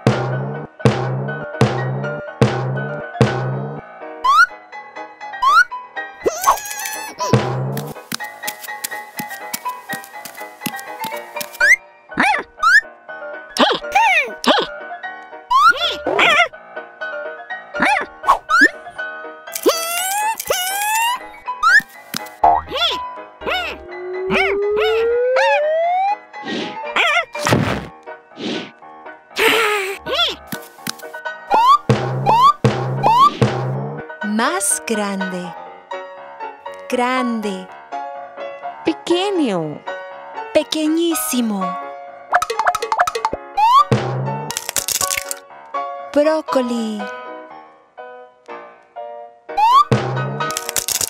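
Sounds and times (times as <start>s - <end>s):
background music: 0.0s - 51.0s
eggshell cracking: 19.5s - 20.9s, 44.5s - 45.4s, 50.4s - 51.0s
springy cartoon boings: 22.4s - 26.2s, 31.5s - 33.7s.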